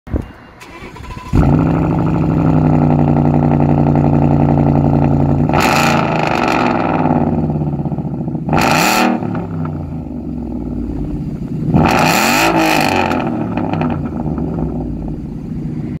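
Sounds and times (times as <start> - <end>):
car engine idling and revving: 0.2 - 16.0.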